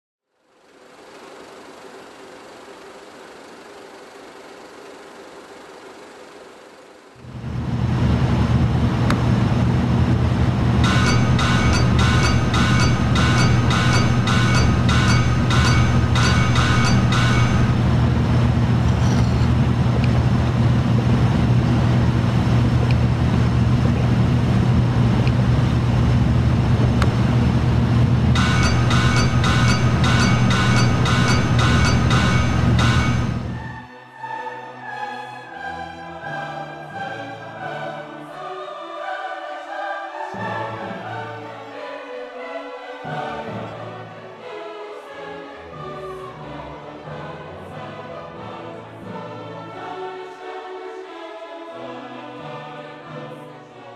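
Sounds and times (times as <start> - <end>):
loud low rumble: 7.2 - 33.8.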